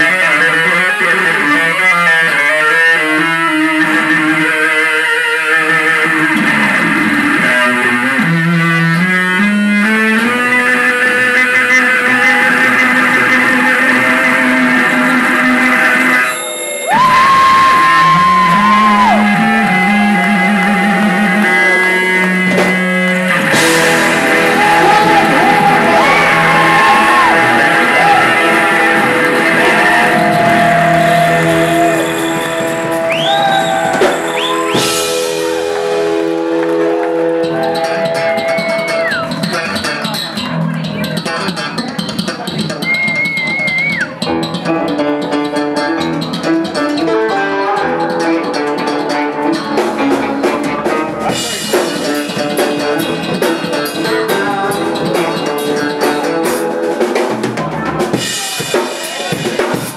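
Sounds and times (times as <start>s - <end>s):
live band playing: 0.0s - 59.9s
high guitar note bending up: 20.0s - 39.7s.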